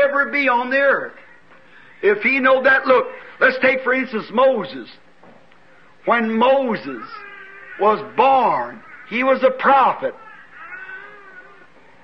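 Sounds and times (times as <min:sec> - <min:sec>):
faint drawn-out cry: 0:06.7 - 0:12.0.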